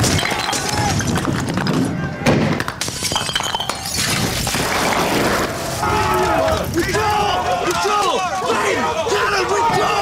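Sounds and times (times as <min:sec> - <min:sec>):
glass shattering: 0:02.8 - 0:05.4
people shouting: 0:05.7 - 0:10.0.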